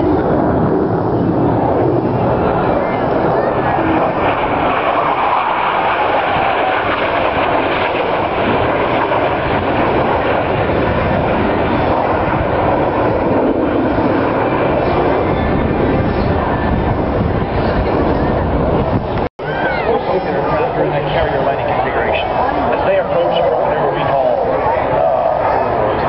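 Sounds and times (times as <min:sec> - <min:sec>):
fighter jets roaring past: 0:00.0 - 0:26.0.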